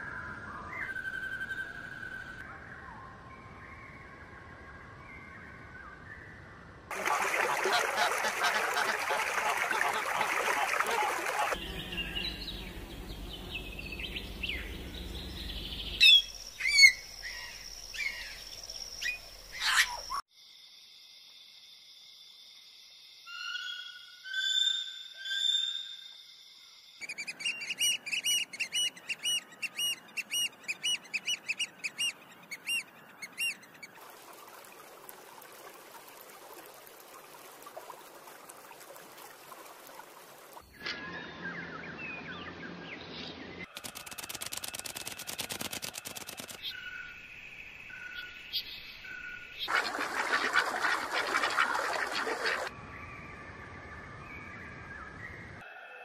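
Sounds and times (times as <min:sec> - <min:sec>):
bird calls and songs: 0:00.0 - 0:06.7, 0:08.4 - 0:20.2, 0:23.3 - 0:26.2, 0:27.0 - 0:34.0, 0:40.6 - 0:44.1, 0:44.8 - 0:56.0.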